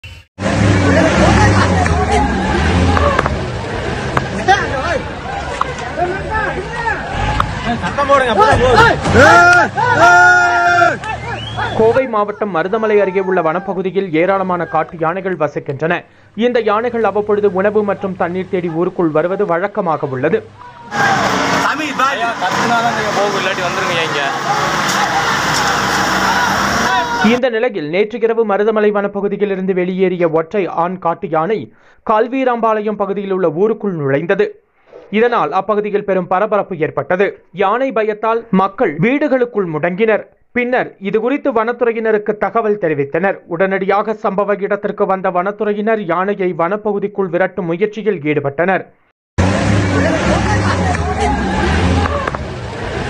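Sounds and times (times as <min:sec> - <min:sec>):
people talking over one another: 0:00.9 - 0:15.9
people shouting: 0:01.0 - 0:03.5, 0:04.3 - 0:12.0, 0:12.7 - 0:13.8, 0:20.5 - 0:27.4, 0:49.9 - 0:52.5
vehicle engine running: 0:20.9 - 0:27.4, 0:49.4 - 0:53.0.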